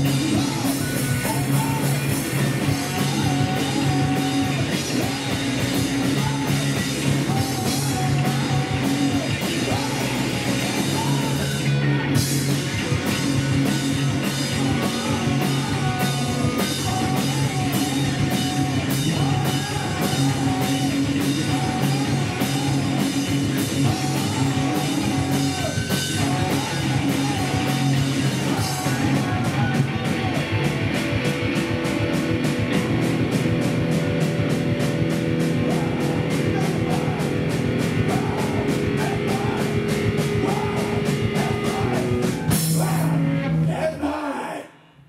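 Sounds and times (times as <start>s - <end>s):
fast drum beat: 0.0s - 43.2s
live rock band playing: 0.0s - 43.7s.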